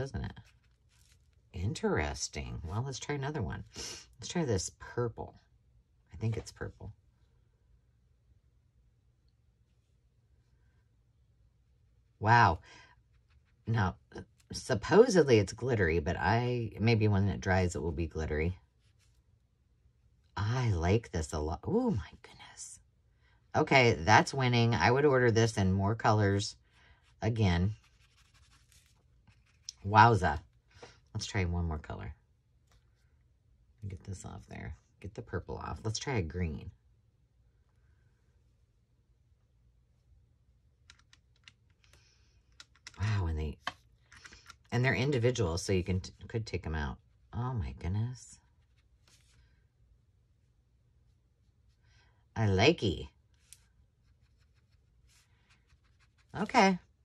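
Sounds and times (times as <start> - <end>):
brush scratching on paper: 0.0 - 1.4, 27.8 - 29.7, 53.4 - 56.5.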